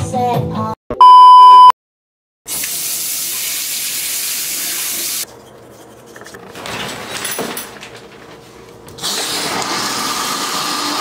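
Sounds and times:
electronic beep: 0:00.9 - 0:01.8
water running from a tap: 0:02.5 - 0:05.2.

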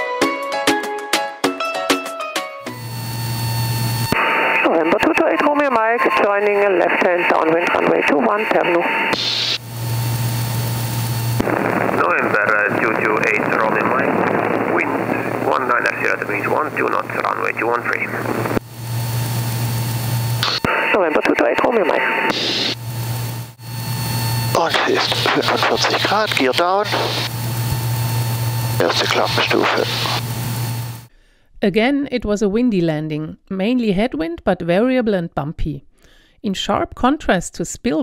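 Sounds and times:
airplane engine and propeller drone: 0:06.5 - 0:31.1.

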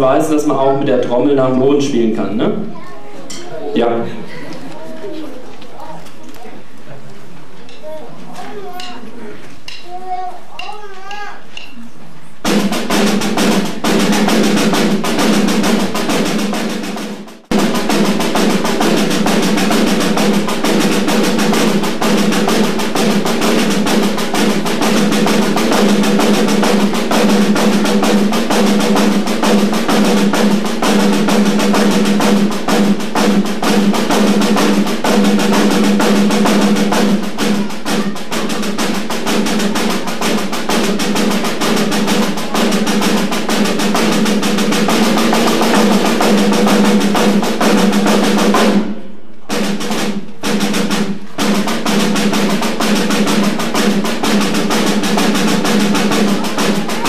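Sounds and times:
snare drum rolls: 0:12.4 - 0:57.0.

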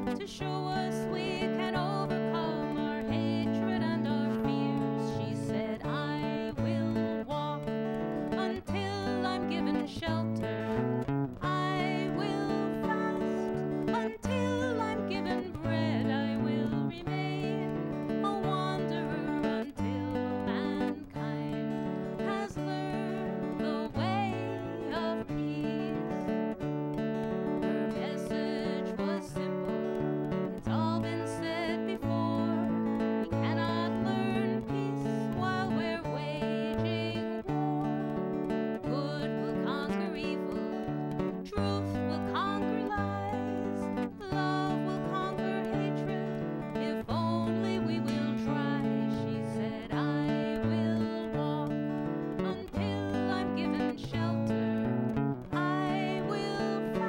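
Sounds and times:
strummed acoustic guitar: 0:00.0 - 0:57.0
woman singing: 0:00.0 - 0:57.0.

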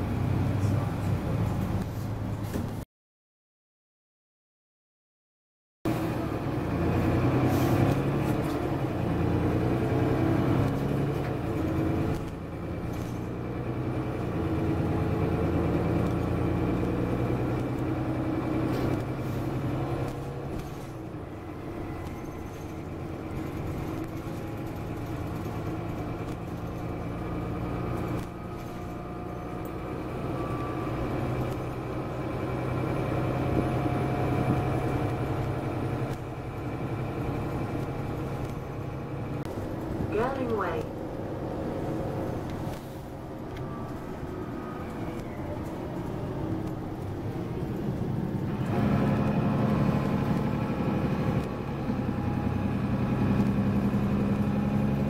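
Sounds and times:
bus diesel engine drone: 0:00.0 - 0:02.8, 0:05.9 - 0:55.0
road noise: 0:00.0 - 0:02.8, 0:05.9 - 0:55.0.

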